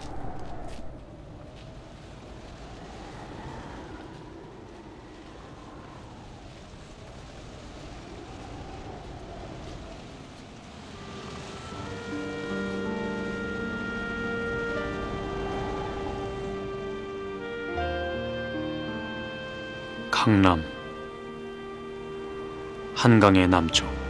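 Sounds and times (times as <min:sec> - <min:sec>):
wind moaning: 0:00.0 - 0:24.0
sustained soundtrack music: 0:10.0 - 0:24.0.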